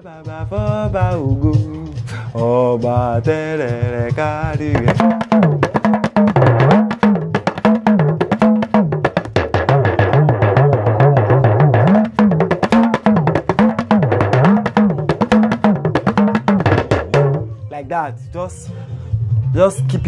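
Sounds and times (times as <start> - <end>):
talking drum pitch sliding: 4.8 - 17.6.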